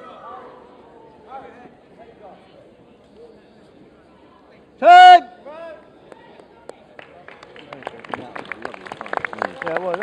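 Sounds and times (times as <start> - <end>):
man shouting: 4.8 - 5.7.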